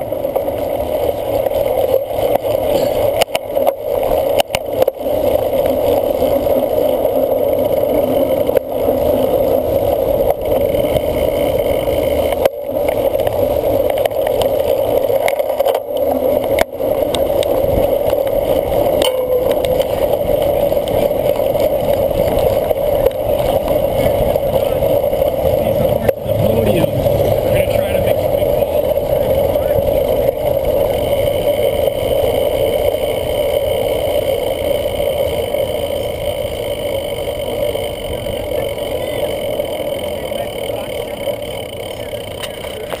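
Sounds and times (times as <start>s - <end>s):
wind and bike riding noise: 0.0s - 43.0s.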